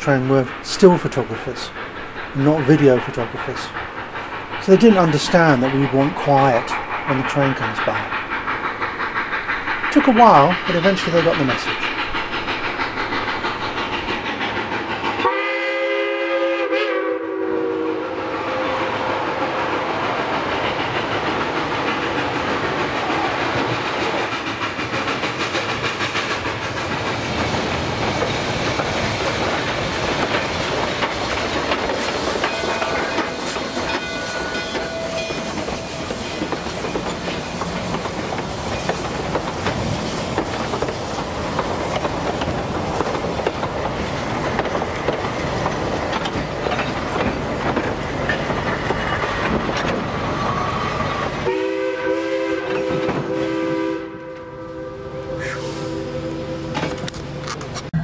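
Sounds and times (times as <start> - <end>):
train wheels on rails: 0.0 - 58.0
steam locomotive whistle: 15.2 - 19.2, 32.4 - 36.6, 51.0 - 57.5.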